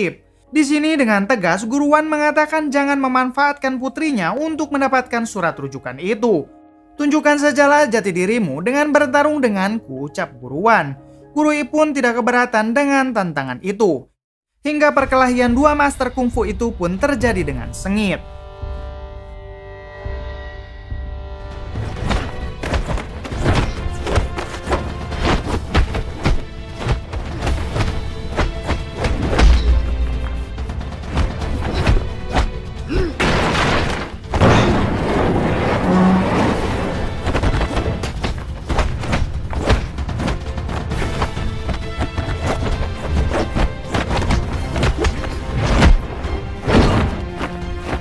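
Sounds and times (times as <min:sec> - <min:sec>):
film music score: 0:00.0 - 0:13.9, 0:14.7 - 0:48.0
steady low bass: 0:16.2 - 0:21.9
punch and block hits: 0:21.9 - 0:30.4, 0:37.2 - 0:48.0.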